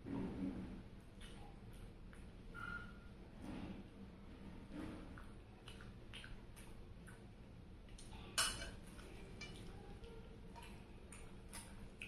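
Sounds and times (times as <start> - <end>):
chewing clicks: 5.2 - 7.3.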